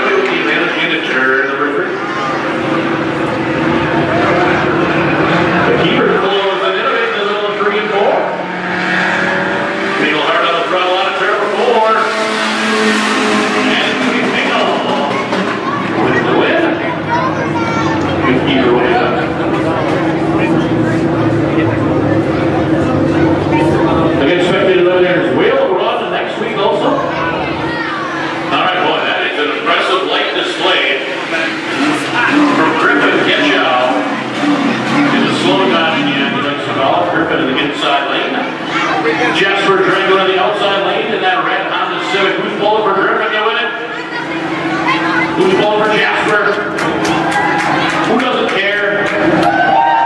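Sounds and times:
race car engines revving: 0.0s - 50.0s
voices: 0.0s - 50.0s
car passing with tyre noise: 8.2s - 16.0s.

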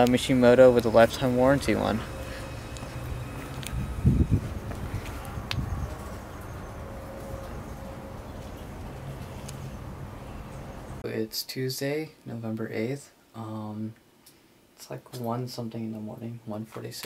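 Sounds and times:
faint steady tone: 0.0s - 11.0s
outdoor background hum: 0.0s - 11.0s
short low rumble: 1.2s - 11.0s.

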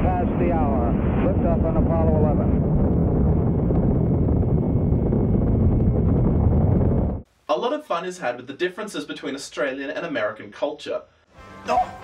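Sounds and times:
rocket engines deep rumble: 0.0s - 7.2s.

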